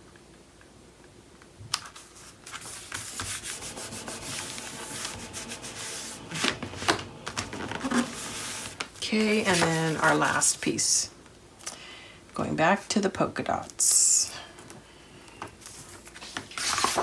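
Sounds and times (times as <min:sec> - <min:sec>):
paper rubbing on paper: 0:02.5 - 0:10.3.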